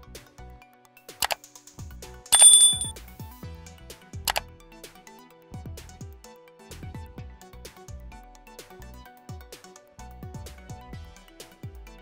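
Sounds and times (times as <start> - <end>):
bright bell ding: 2.4 - 2.9.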